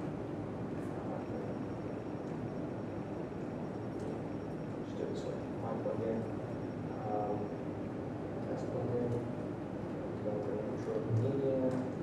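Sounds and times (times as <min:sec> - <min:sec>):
low rush of room noise: 0:00.0 - 0:12.0.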